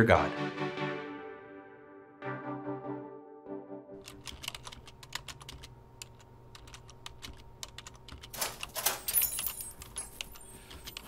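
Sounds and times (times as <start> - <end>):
computer keyboard typing: 4.0 - 11.0
faint room hum: 4.0 - 11.0.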